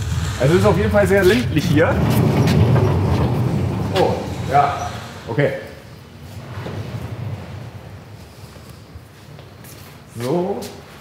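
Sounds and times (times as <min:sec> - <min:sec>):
low room rumble: 0:00.0 - 0:11.0
footsteps and knocks: 0:02.0 - 0:04.6, 0:06.3 - 0:10.8.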